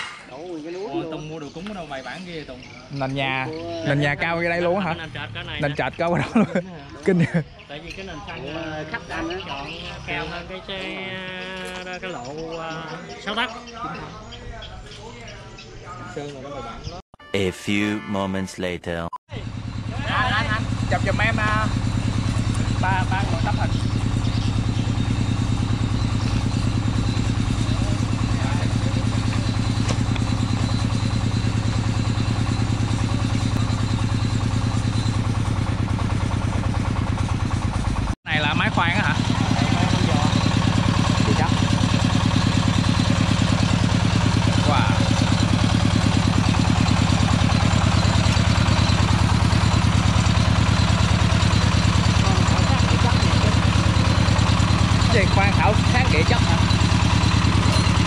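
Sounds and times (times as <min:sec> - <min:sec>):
drilling rig engine running: 0:01.0 - 0:06.6, 0:19.3 - 0:58.0.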